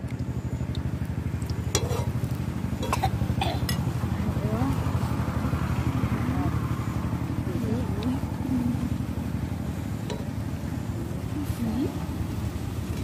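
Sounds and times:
engine running steadily: 0.0s - 13.0s
faint voices: 10.1s - 12.4s.

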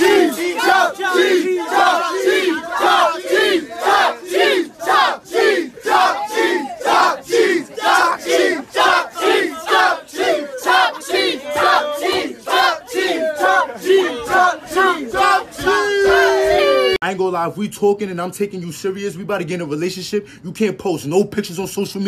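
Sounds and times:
men chanting together: 0.0s - 16.7s.

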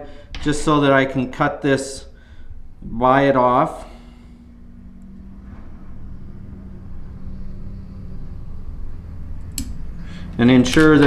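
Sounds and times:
faint hum: 0.0s - 11.0s
low steady rumble: 0.0s - 11.0s
sharp click: 9.4s - 9.8s.

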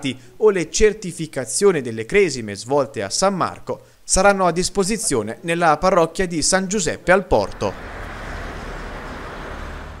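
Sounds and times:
distant road traffic hum: 7.4s - 10.0s.

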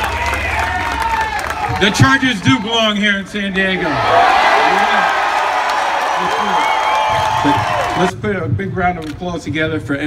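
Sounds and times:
shouts and whoops: 0.0s - 2.4s, 3.8s - 8.1s
crowd cheering and applauding: 0.0s - 8.1s
man speaking over loudspeaker: 1.7s - 5.1s, 7.4s - 10.0s.

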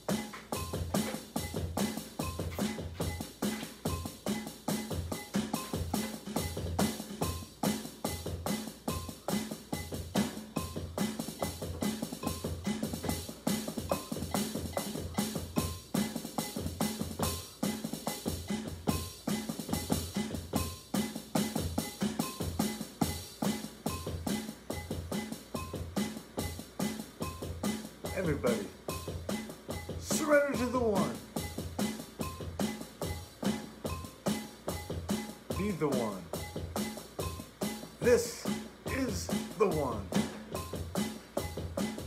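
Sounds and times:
rock drum groove: 0.0s - 42.0s.

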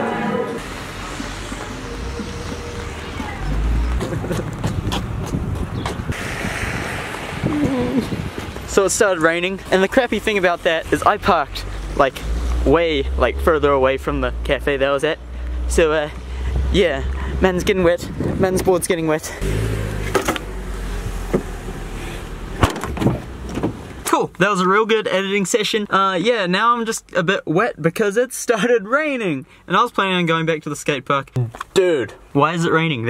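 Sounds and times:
wind buffeting microphone: 2.0s - 8.7s, 16.5s - 19.1s
hiss of tyres on wet road: 6.1s - 8.6s
car tailgate slamming: 22.6s - 23.8s.

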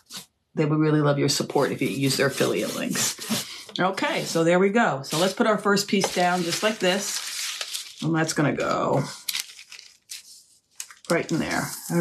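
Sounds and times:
paper crinkling: 5.1s - 12.0s.

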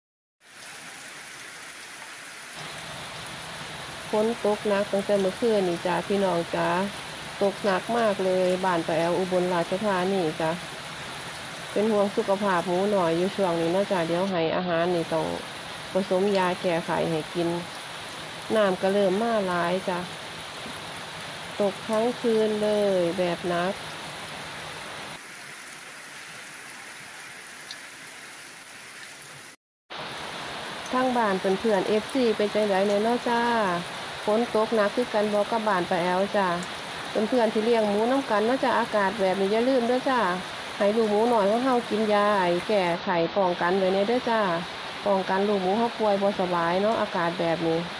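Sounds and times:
heavy rain falling: 0.4s - 47.9s.

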